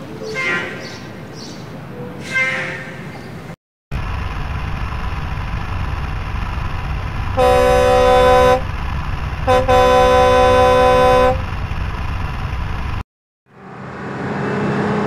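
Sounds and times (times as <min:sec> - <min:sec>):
truck engine idling: 0:04.0 - 0:10.4
truck horn blasts: 0:07.4 - 0:08.6, 0:09.5 - 0:11.4.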